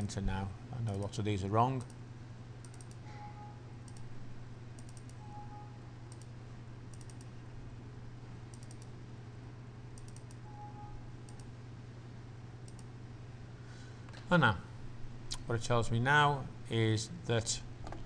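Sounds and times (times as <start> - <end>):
low electrical hum: 0.0 - 18.0
computer keyboard and mouse clicks: 2.6 - 3.0, 3.9 - 4.1, 4.8 - 5.2, 6.1 - 6.3, 6.9 - 7.3, 8.5 - 8.9, 10.0 - 10.4, 11.3 - 11.5, 12.6 - 12.9.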